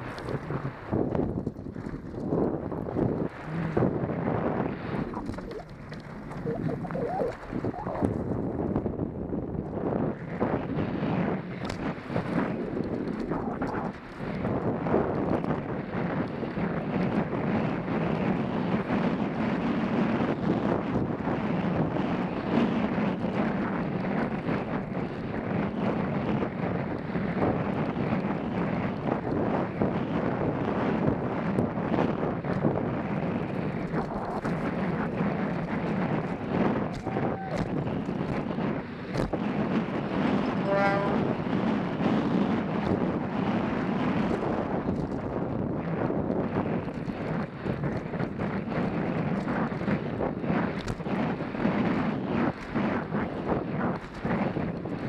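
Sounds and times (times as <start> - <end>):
wind rush on microphone: 0.0 - 55.0.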